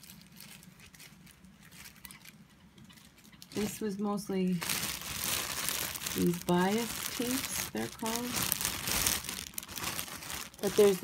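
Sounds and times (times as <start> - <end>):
plastic bag crinkling: 0.0 - 2.4, 3.0 - 11.0.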